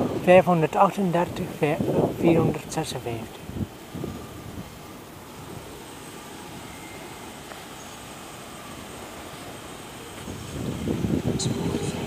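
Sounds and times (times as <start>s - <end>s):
distant train moving: 0.0s - 12.0s
railway station rumble: 0.0s - 12.0s.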